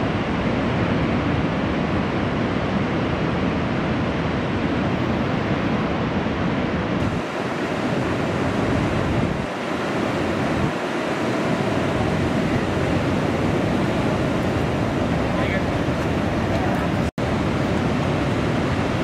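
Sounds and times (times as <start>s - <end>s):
ocean waves breaking: 0.0s - 19.0s
wind noise on microphone: 0.0s - 19.0s.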